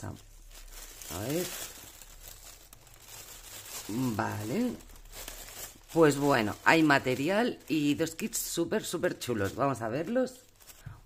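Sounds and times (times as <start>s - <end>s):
plastic mailing bag crinkling: 0.0s - 11.0s.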